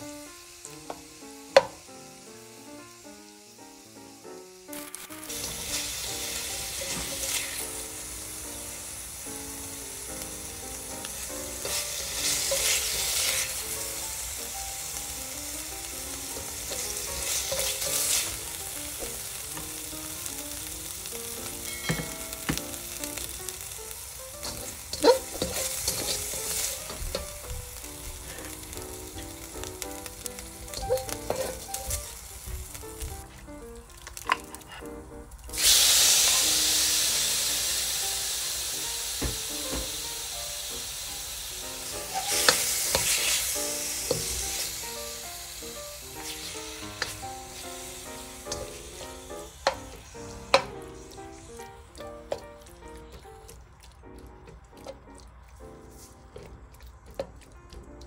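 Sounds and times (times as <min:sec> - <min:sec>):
oil sizzling in a pan: 0:00.0 - 0:56.5
meat sizzling: 0:00.0 - 0:58.0
spatula scraping metal pan: 0:24.4 - 0:27.3, 0:30.8 - 0:31.8, 0:42.1 - 0:43.2.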